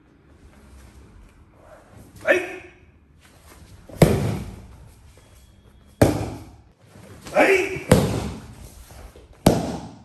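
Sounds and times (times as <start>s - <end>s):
hand slapping a mat: 9.3s - 10.0s.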